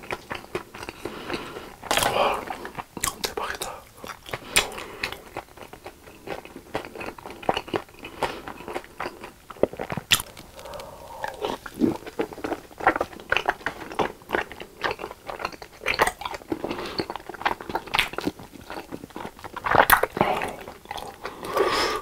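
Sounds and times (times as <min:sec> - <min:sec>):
wet mouth clicks and smacks: 0:03.0 - 0:04.8.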